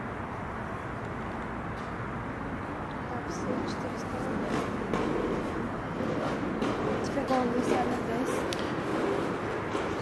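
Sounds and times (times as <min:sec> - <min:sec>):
people talking: 0:03.1 - 0:04.9, 0:07.0 - 0:08.6.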